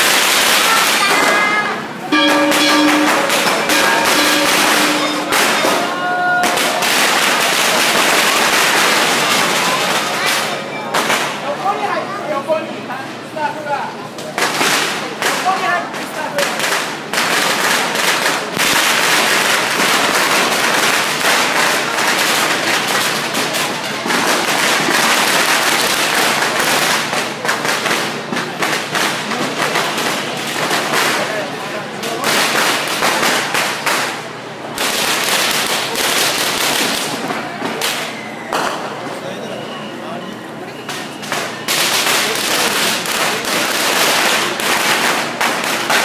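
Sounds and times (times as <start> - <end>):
firecrackers crackling: 0.0 - 39.4, 40.8 - 46.0.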